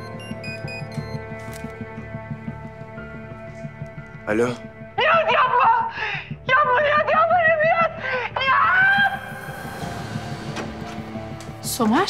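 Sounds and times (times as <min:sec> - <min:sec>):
soft dramatic background music: 0:00.0 - 0:12.0.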